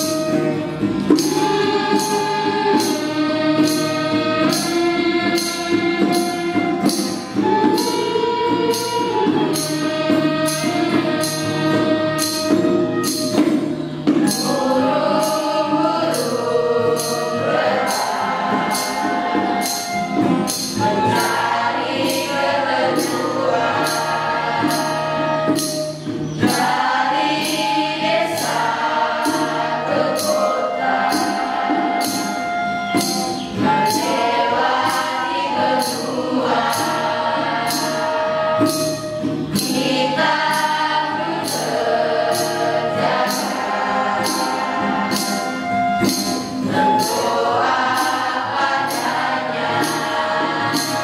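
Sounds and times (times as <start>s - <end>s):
acoustic guitar: 0.0s - 51.0s
choir singing in unison: 0.0s - 51.0s
sharp percussive hits: 0.0s - 51.0s.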